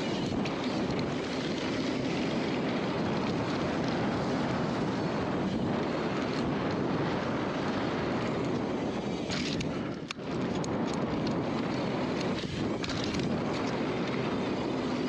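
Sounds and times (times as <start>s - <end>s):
bike tyres rolling over dirt: 0.0s - 15.0s
wind on microphone: 0.0s - 15.0s.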